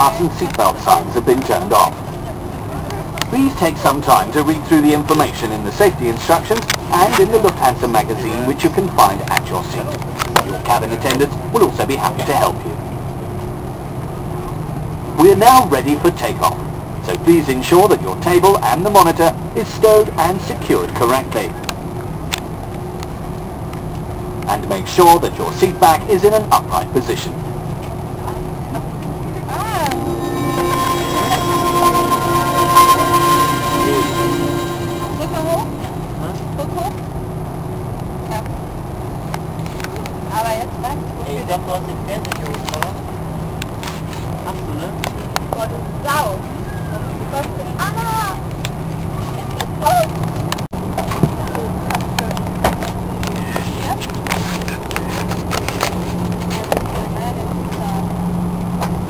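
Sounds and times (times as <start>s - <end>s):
airplane cabin low drone: 28.8s - 37.0s
jet engine whine: 29.2s - 36.8s.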